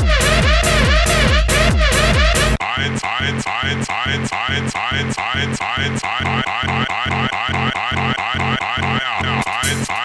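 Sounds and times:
siren-like synth riff: 0.0 - 2.6
pounding bass beat: 0.0 - 5.9.

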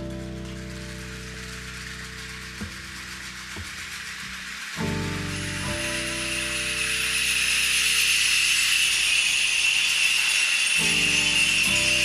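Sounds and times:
shaken jingles rattling: 0.0 - 12.0.

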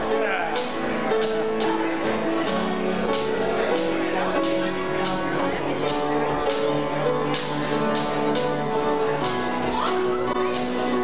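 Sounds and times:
live band with strummed guitars: 0.0 - 11.0
people talking: 0.0 - 11.0.

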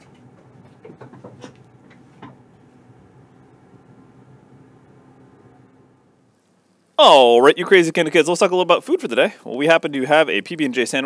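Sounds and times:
soft knocks and rustles: 0.0 - 2.5
faint room hum: 0.0 - 11.0.

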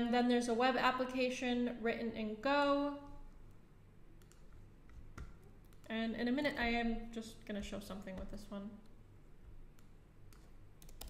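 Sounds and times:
computer mouse and keyboard clicks: 4.2 - 5.9, 9.7 - 11.0.

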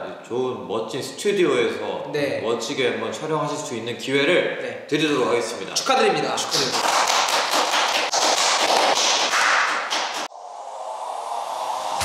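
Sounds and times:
people clapping: 6.4 - 10.3.

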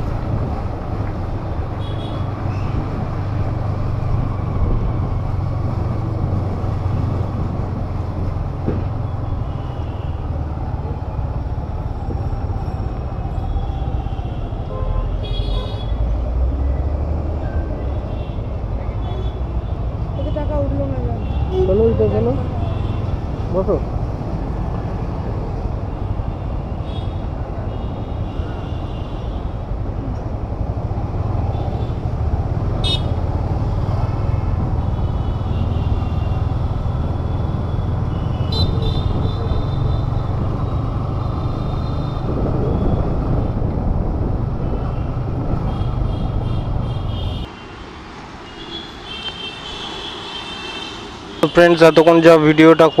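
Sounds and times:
motorcycle engine and road rumble: 0.0 - 52.4
vehicle horns tooting: 13.7 - 16.0, 18.0 - 23.2, 32.8 - 33.2, 34.7 - 40.3, 44.8 - 47.8, 48.4 - 53.0.

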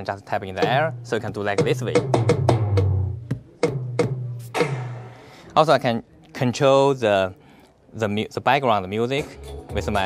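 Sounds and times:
sampled drum hits: 0.6 - 5.3.

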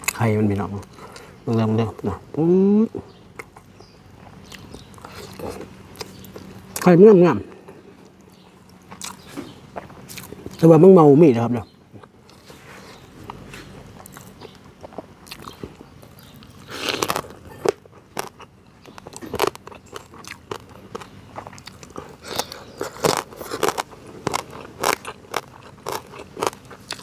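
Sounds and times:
person chewing: 0.8 - 2.2, 3.0 - 6.9, 7.5 - 10.6, 11.9 - 27.0.

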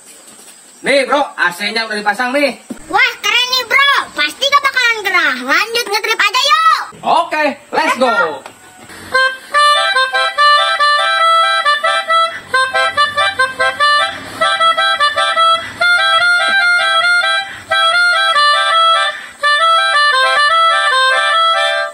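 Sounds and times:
melodica playing a quick melody: 8.1 - 21.9.

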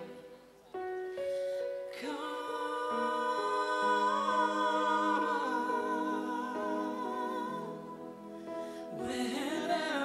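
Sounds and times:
woman and man singing in harmony: 1.8 - 10.0.

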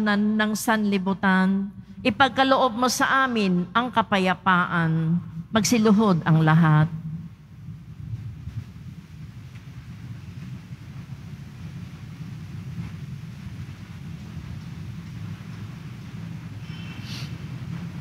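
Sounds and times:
low background rumble: 0.0 - 18.0.

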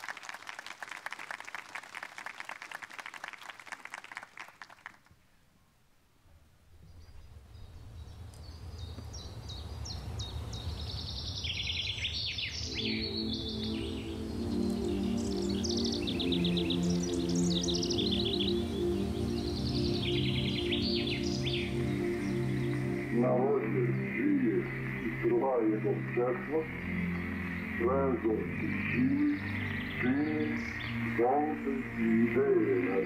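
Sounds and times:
birdsong chirps: 6.7 - 33.0
sustained music chords: 12.6 - 33.0
old recording of man speaking: 23.1 - 26.7, 30.0 - 33.0.

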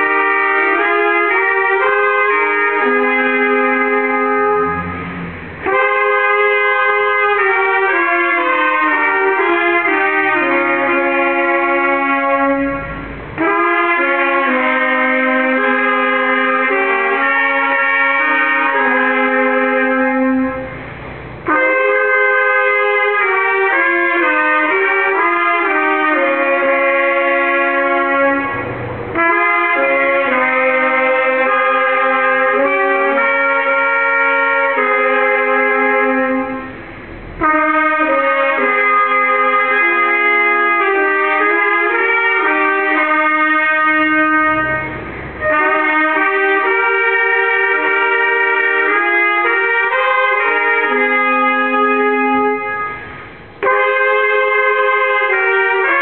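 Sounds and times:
brass ensemble playing chords: 0.0 - 56.0.

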